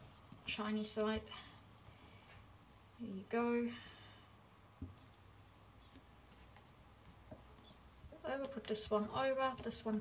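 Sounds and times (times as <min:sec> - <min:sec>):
faint clicks of weaving flax: 0:03.8 - 0:10.0.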